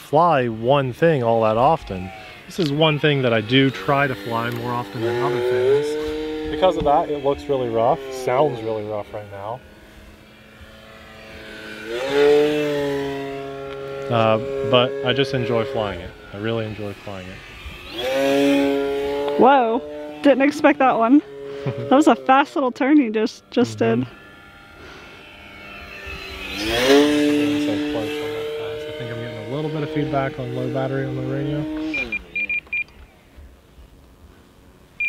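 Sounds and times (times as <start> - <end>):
model plane motor and propeller whine: 0.0 - 35.0.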